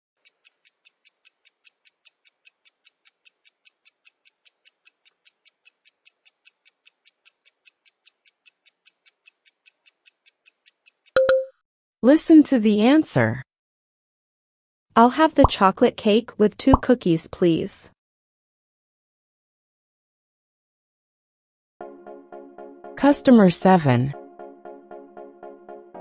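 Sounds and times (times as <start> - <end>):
clock ticking quickly: 0.2 - 11.4
short beep: 11.2 - 11.5.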